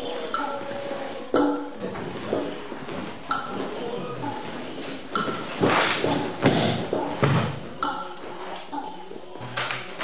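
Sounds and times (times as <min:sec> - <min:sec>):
bare feet stamping on a mat: 0:05.2 - 0:07.7.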